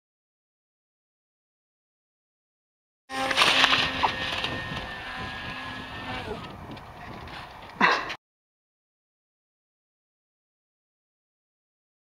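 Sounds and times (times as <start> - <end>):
thin motor whine: 3.1 - 7.5
wind rushing over microphone: 3.3 - 8.1.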